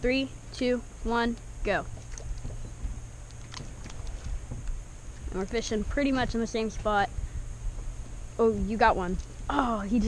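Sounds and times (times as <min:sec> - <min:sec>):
low wind rumble: 0:00.0 - 0:10.0.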